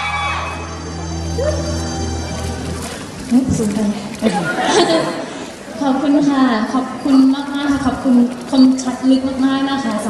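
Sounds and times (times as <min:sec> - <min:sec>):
people chattering: 0:00.0 - 0:10.0
woman speaking into a microphone: 0:03.3 - 0:05.1, 0:05.7 - 0:10.0.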